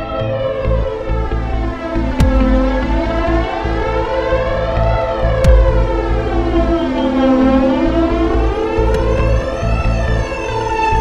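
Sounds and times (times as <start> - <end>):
filtered synth drone: 0.0 - 11.0
deep kick drum hit: 2.2 - 3.0, 5.4 - 6.2.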